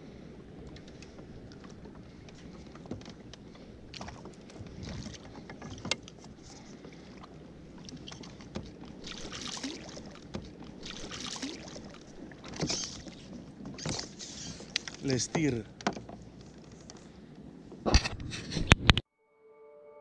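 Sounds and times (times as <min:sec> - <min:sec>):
fish splashing at surface: 0:09.0 - 0:13.2.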